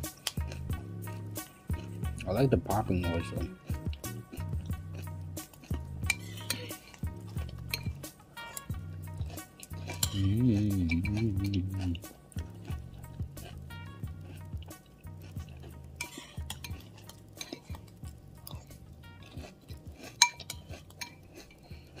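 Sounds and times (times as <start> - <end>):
spoon clinking against cereal bowl: 5.6 - 12.0, 14.8 - 21.8.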